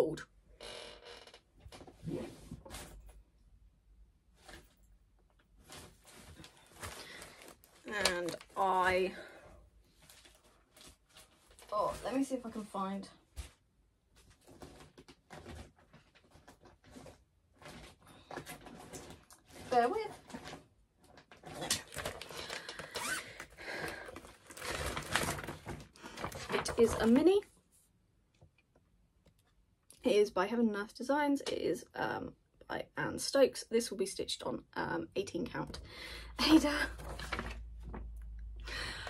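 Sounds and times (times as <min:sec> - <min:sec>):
soft rustling and handling: 0:04.3 - 0:23.2.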